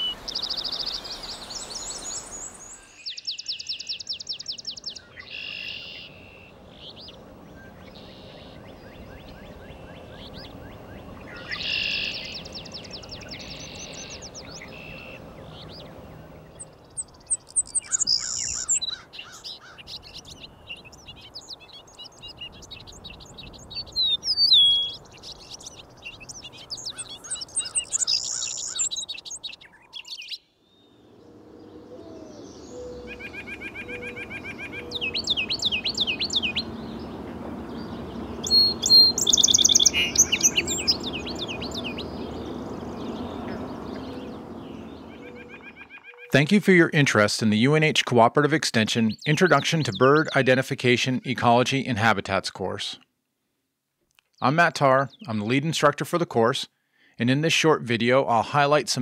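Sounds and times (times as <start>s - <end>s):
trilled bird song: 0.0s - 46.6s, 48.7s - 51.2s
bird singing rapid phrases: 0.0s - 53.0s, 54.3s - 59.0s
whistled bird phrases: 17.1s - 19.0s, 19.9s - 30.4s, 37.8s - 46.4s.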